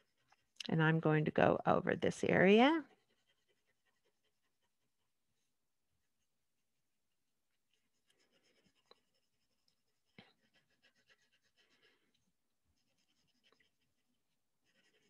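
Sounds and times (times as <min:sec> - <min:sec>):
pencil scratching on paper: 0:00.0 - 0:00.6, 0:01.4 - 0:05.4, 0:07.6 - 0:15.0.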